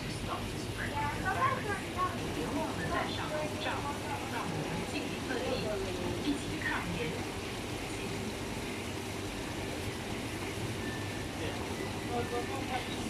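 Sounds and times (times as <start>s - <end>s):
faint indistinct voices: 0.0s - 9.4s, 10.5s - 13.0s
steady background hum: 0.0s - 13.0s.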